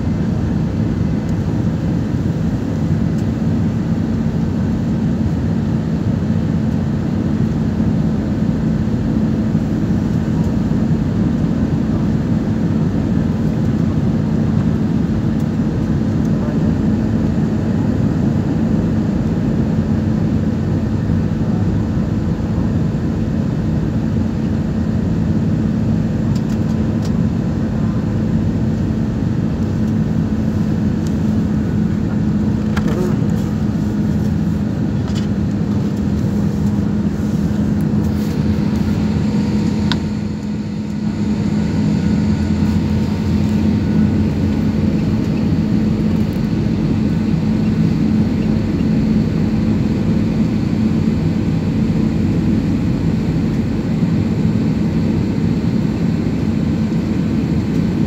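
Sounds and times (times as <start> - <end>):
airliner cabin engine noise: 0.0 - 58.0.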